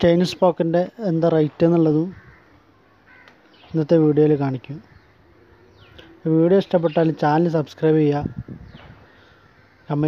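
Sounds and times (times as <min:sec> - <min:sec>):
man talking: 0:00.0 - 0:02.2, 0:03.6 - 0:04.9, 0:06.2 - 0:08.4
faint bird call: 0:02.1 - 0:03.8.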